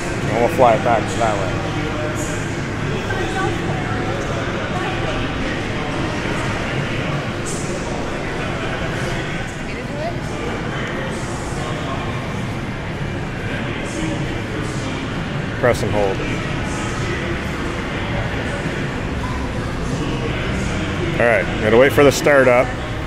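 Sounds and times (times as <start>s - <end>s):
indistinct voices talking: 0.0s - 23.0s.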